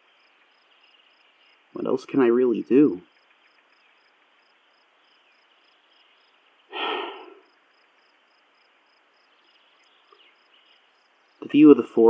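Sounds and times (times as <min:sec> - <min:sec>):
crickets chirping: 0:00.0 - 0:11.8
man sighing: 0:06.7 - 0:07.4.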